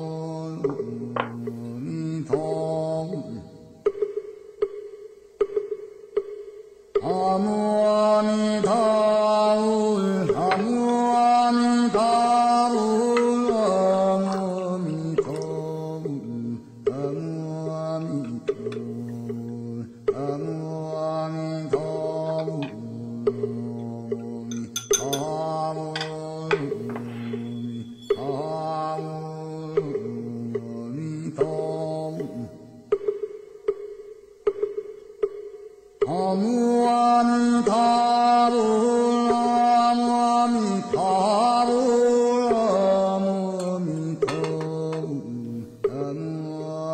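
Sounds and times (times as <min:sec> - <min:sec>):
mantra chanting: 0:00.0 - 0:03.9, 0:07.0 - 0:32.9, 0:36.0 - 0:46.9
soft knock: 0:00.6 - 0:01.5.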